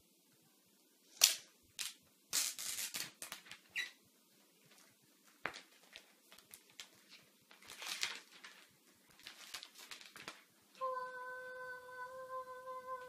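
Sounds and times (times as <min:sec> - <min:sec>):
plastic packaging crinkling: 0:01.2 - 0:03.8, 0:04.7 - 0:10.6.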